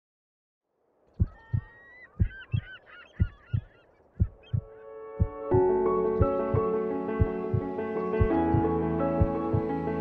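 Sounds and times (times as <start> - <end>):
deep double thumps: 1.2 - 2.6, 3.2 - 5.5, 6.2 - 9.7
birds honking: 1.2 - 5.1.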